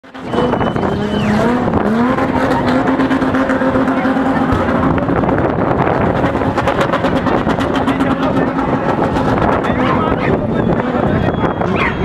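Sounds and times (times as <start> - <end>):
car engine at high revs: 0.0 - 12.0
crowd voices: 0.0 - 12.0.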